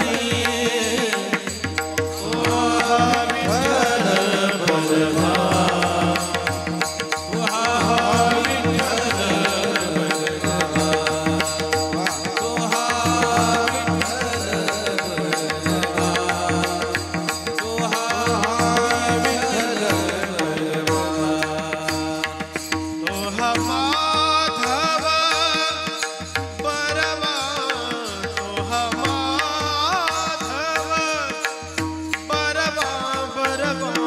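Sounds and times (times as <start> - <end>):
men singing devotional chant: 0.0 - 34.0.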